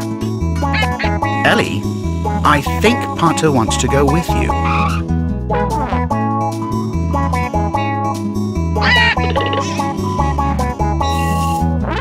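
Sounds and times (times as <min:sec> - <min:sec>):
background music: 0:00.0 - 0:12.0
cartoon duck quacking: 0:08.8 - 0:10.0.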